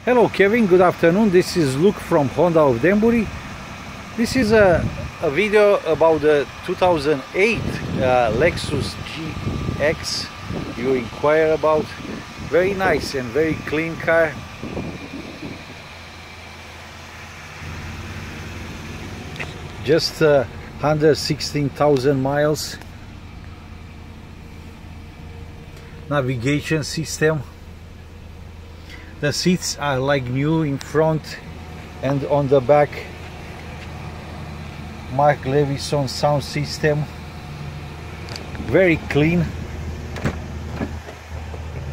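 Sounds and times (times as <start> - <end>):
car engine idling: 0.0 - 41.9.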